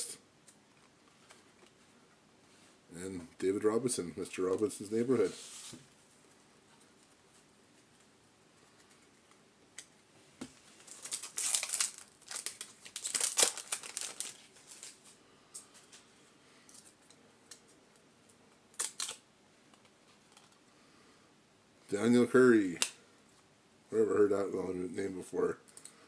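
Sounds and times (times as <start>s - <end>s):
wrapper tearing and crinkling: 10.8s - 15.0s, 18.8s - 19.2s.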